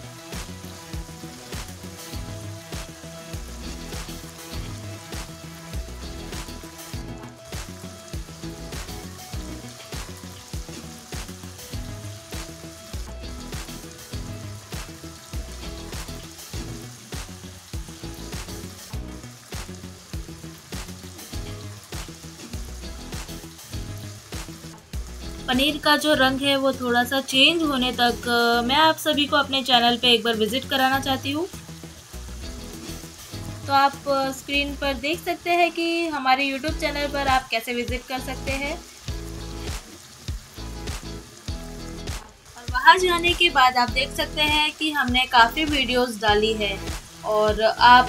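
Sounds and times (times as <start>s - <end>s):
background music with steady beat: 0.0s - 48.0s
cheese cubes sizzling in oil: 0.0s - 48.0s.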